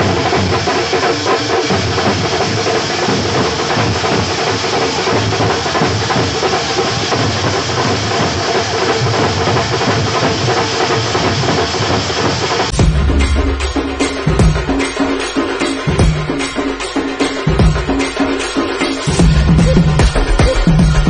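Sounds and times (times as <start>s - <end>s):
drum troupe beating drums: 0.0s - 21.0s.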